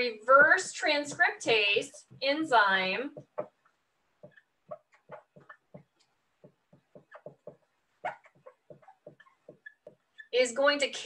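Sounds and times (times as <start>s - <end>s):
marker writing on whiteboard: 0.0s - 10.4s.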